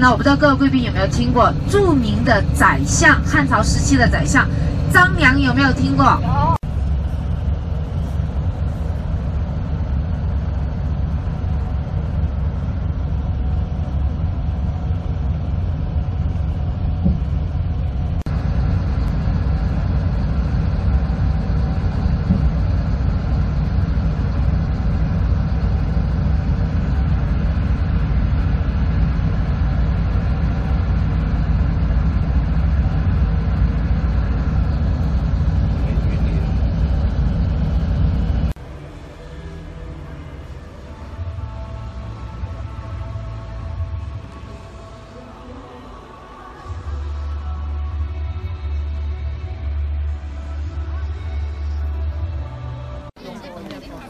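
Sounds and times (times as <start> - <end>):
bus engine and tyres rumbling: 0.0 - 54.0.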